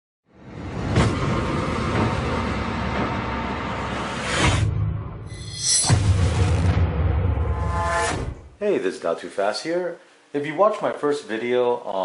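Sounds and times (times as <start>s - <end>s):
loud rushing noise: 0.4s - 8.5s
low rumble: 0.4s - 8.6s
sharp hit: 0.5s - 8.6s.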